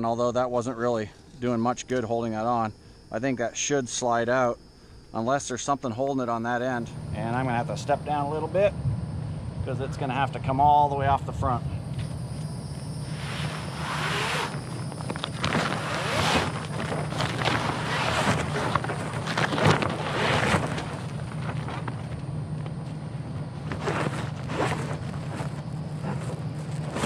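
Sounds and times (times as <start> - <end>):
awning fabric rustling and scraping: 13.0 - 22.2, 23.5 - 27.0.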